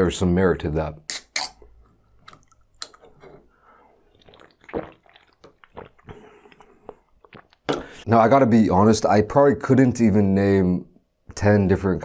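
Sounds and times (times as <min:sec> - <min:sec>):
chewing and swallowing: 0:02.2 - 0:08.0.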